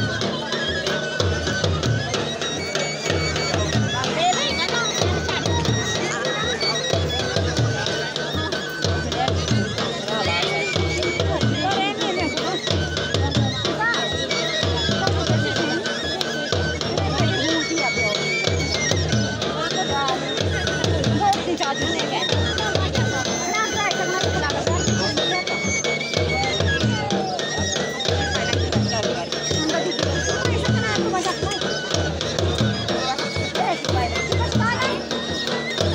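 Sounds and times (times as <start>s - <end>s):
crowd voices: 0.0s - 35.9s
drums beating steady rhythm: 0.0s - 35.9s
wind instrument long high notes: 0.0s - 35.9s.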